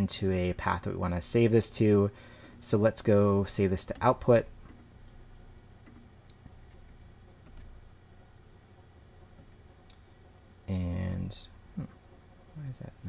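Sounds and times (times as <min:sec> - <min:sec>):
low steady background hum: 0:00.0 - 0:13.0
computer keyboard typing: 0:05.8 - 0:07.8.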